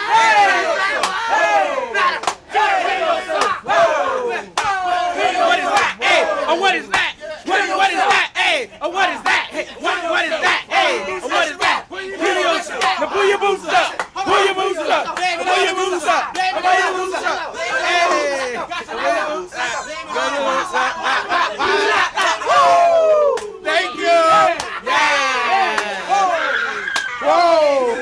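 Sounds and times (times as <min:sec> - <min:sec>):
young men shouting and whooping: 0:00.0 - 0:28.0.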